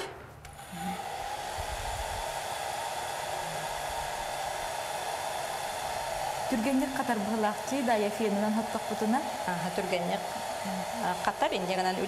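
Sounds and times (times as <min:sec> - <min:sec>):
hot-air blower running: 0:00.0 - 0:12.0.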